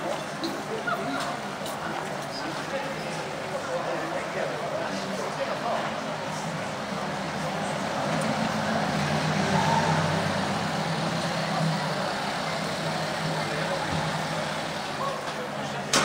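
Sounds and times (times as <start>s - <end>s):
street traffic: 0.0s - 16.0s
vehicle engine humming: 4.7s - 15.9s.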